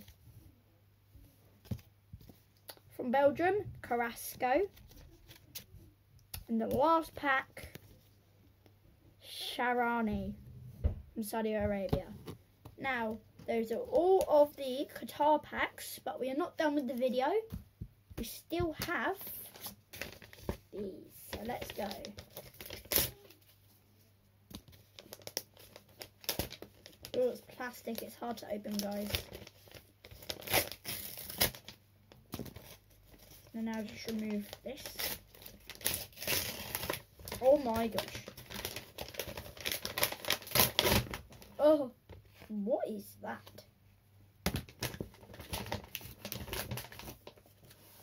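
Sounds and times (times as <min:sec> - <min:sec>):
plastic wrapping crinkling and ripping: 0:18.8 - 0:23.6, 0:24.5 - 0:41.6, 0:44.5 - 0:48.0.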